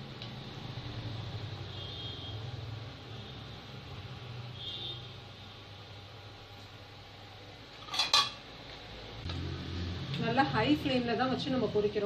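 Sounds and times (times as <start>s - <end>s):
metal spoon clinking on iron pan: 7.8s - 8.4s.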